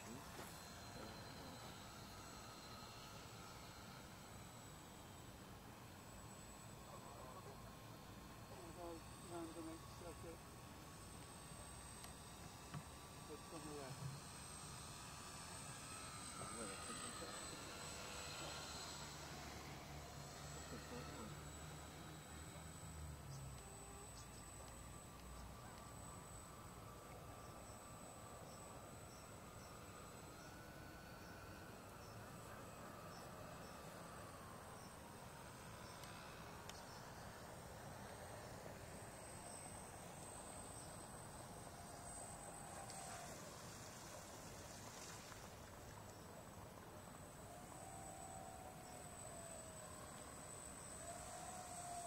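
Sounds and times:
electric motors whining: 0.0 - 52.0
steady high-pitched tone: 0.0 - 52.0.

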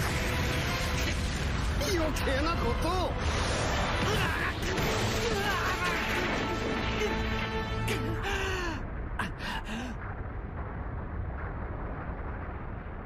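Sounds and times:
battle soundtrack music: 0.0 - 8.4
steady low rumble: 0.0 - 13.0.

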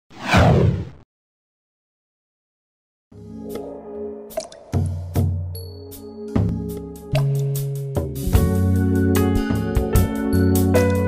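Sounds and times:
whoosh falling in pitch: 0.1 - 1.0.

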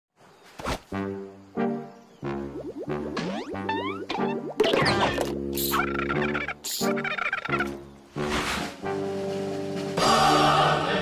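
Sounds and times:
cartoon soundtrack music: 1.0 - 11.0.

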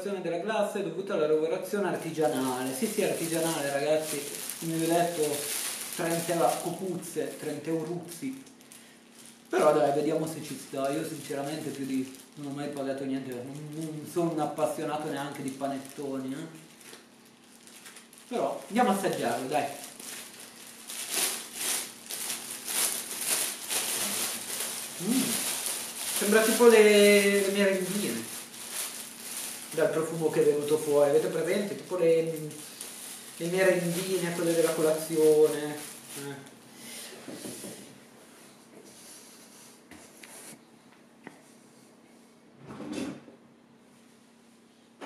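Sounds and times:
cellophane crinkling: 1.8 - 36.6.

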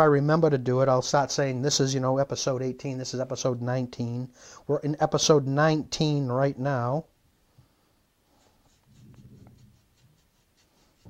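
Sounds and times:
paintbrush scratching on plastic: 8.3 - 11.0.

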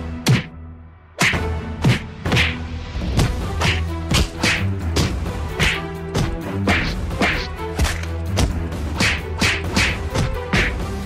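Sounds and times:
cartoon swishing punch hits: 1.2 - 2.6.

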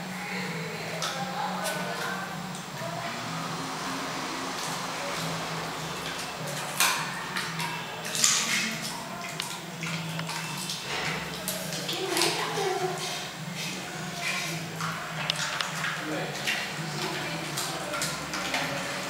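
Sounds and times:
faint background music: 0.0 - 19.0.

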